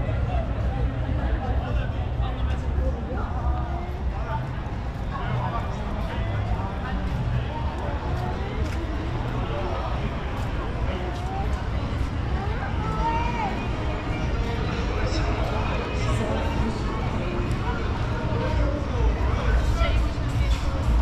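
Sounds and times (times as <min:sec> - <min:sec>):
indistinct chatter: 0:00.0 - 0:21.0.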